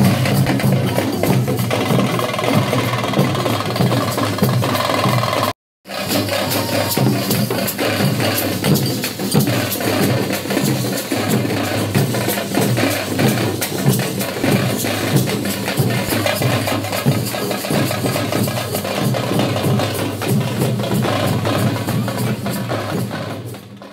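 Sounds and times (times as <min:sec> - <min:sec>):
drums beating fast: 0:00.0 - 0:23.9.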